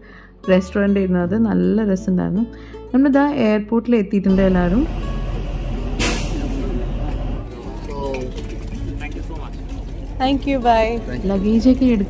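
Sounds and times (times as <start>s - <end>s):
coach engine idling: 4.4s - 12.0s
air brake hiss: 5.8s - 6.9s.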